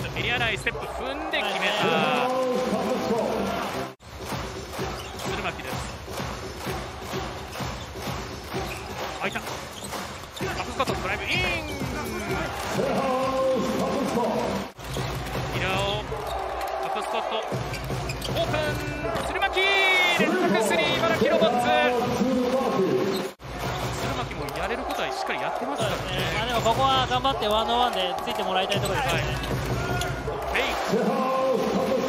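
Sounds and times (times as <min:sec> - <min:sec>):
music: 0:02.5 - 0:16.1, 0:28.8 - 0:30.5
basketball bouncing on wooden court: 0:04.2 - 0:12.4.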